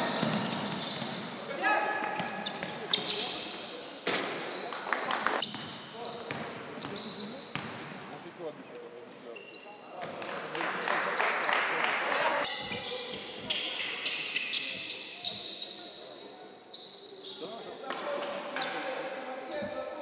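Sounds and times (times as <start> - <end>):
sneakers squeaking on floor: 0.0 - 8.5, 9.1 - 11.6, 12.4 - 20.0
basketball bouncing on wooden court: 0.1 - 1.2, 7.5 - 7.8.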